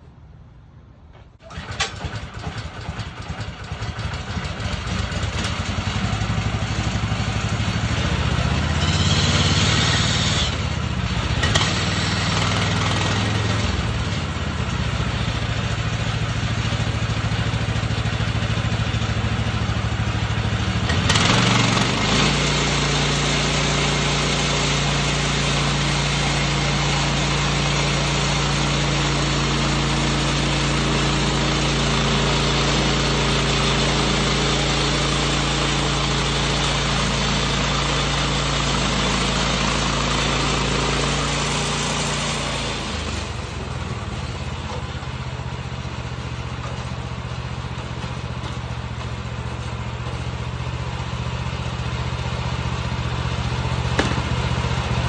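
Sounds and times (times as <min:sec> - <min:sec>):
sawmill gasoline engine running: 0:01.4 - 0:55.0.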